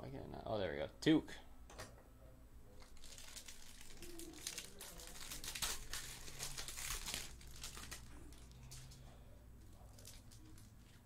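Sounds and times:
foil wrapper crinkling and tearing: 0:02.8 - 0:11.0.

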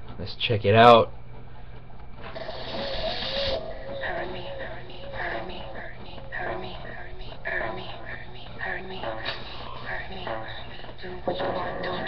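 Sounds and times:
grating mechanical noise: 0:01.7 - 0:12.0
wavering tone: 0:02.4 - 0:12.0.

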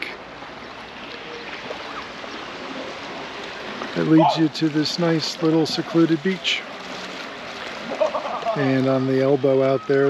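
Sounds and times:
small waves on rocky shore: 0:00.0 - 0:10.0.

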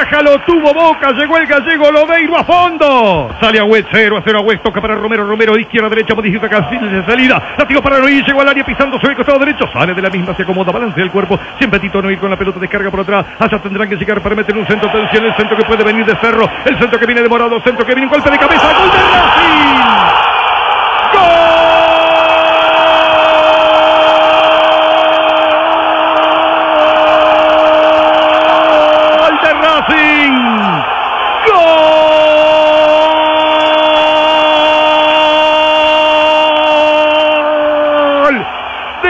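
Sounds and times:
background noise: 0:00.0 - 0:39.0.

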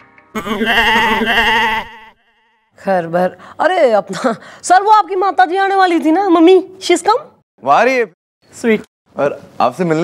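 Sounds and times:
wavering bleat-like cry: 0:00.4 - 0:02.7.

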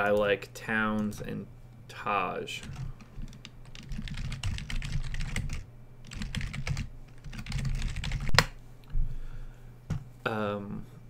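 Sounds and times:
keyboard typing: 0:02.6 - 0:08.5.

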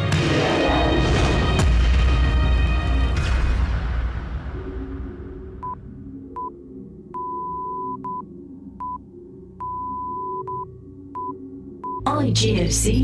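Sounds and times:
soft background music: 0:04.6 - 0:13.0
electronic morse code beeps: 0:07.1 - 0:08.2, 0:09.6 - 0:12.1.

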